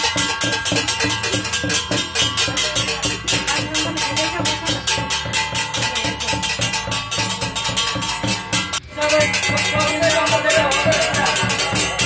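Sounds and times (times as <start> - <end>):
brass plates struck with sticks: 0.0 - 12.0.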